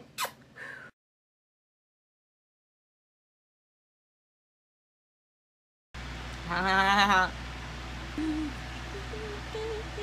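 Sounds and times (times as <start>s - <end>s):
woman humming: 8.2s - 10.0s.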